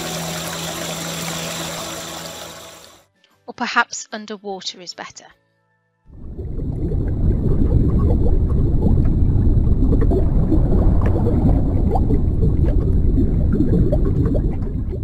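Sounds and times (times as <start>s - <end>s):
deep underwater rumble: 6.1s - 15.0s.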